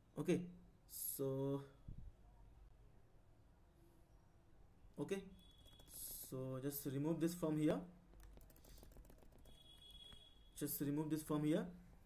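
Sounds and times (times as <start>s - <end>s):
computer keyboard typing: 5.5s - 6.3s, 8.1s - 10.3s.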